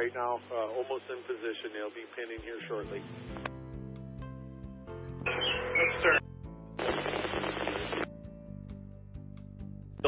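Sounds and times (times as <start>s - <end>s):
two-way radio hiss: 0.0s - 3.5s, 6.8s - 8.1s
background music with held notes: 0.0s - 10.0s.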